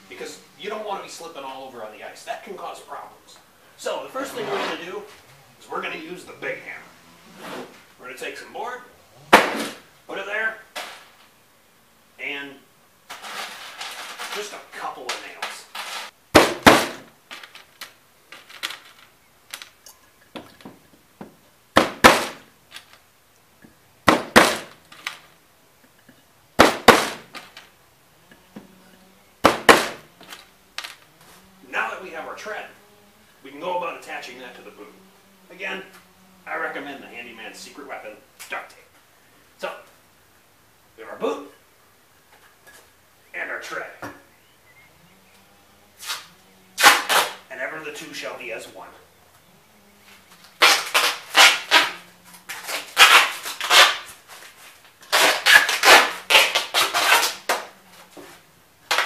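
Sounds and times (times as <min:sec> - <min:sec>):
duct tape ripping off roll: 0:09.2 - 0:09.9, 0:13.1 - 0:18.0, 0:21.8 - 0:23.0, 0:24.0 - 0:25.3, 0:26.6 - 0:27.7, 0:29.4 - 0:31.1, 0:46.0 - 0:47.5, 0:50.4 - 0:58.2
hammer driving nails into wood: 0:09.4 - 0:09.8, 0:16.4 - 0:17.1, 0:21.8 - 0:22.4, 0:24.1 - 0:25.2, 0:26.6 - 0:27.6, 0:29.4 - 0:30.9.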